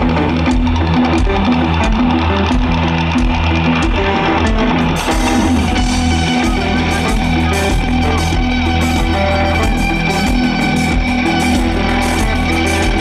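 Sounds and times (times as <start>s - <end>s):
electric guitars: 0.0s - 13.0s
repeating bass line: 0.0s - 13.0s
steady drum beat: 0.0s - 13.0s.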